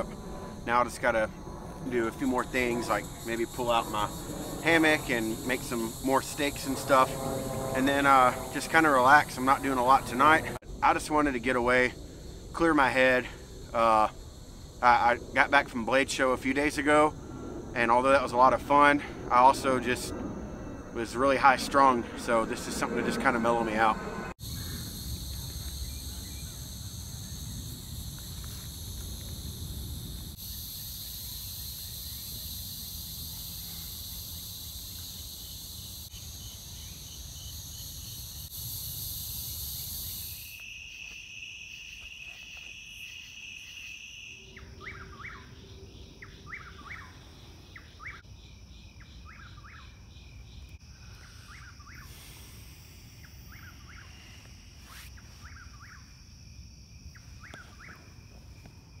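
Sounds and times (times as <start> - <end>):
insects droning: 0.0 - 59.0.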